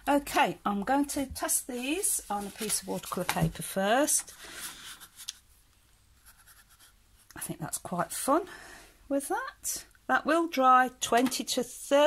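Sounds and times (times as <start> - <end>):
paintbrush scratching on paper: 4.4 - 5.4, 6.2 - 7.5.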